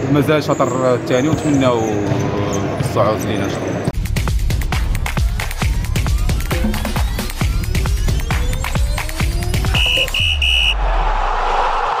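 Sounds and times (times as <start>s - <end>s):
short high beeps: 9.7s - 10.7s.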